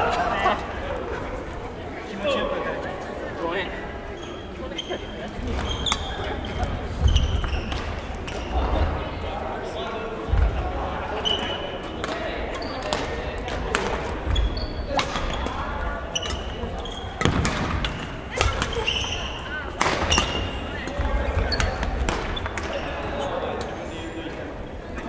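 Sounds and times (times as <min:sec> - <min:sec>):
sneakers squeaking on wooden floor: 0:04.1 - 0:08.7, 0:14.2 - 0:23.3
rackets hitting shuttlecock: 0:12.8 - 0:15.6, 0:17.2 - 0:22.8.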